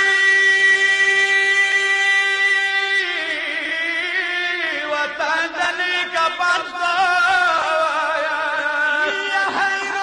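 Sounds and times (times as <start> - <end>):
man chanting through microphones: 0.0 - 10.0.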